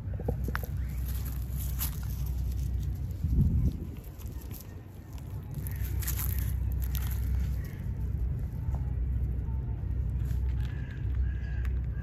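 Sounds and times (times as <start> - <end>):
bird calling: 0.0 - 2.5, 4.6 - 8.8, 9.5 - 12.0
low steady rumble: 0.0 - 12.0.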